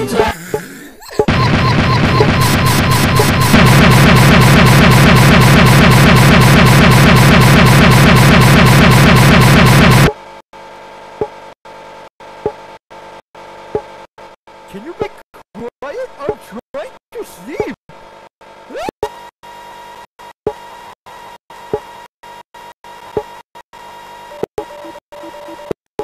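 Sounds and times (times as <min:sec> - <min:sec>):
stuttering distorted computer audio: 0:01.3 - 0:10.1.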